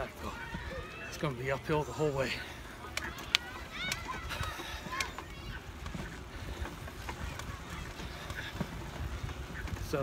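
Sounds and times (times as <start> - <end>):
faint clicks and rattles: 2.6 - 10.0
wind rumbling on microphone: 2.6 - 10.0.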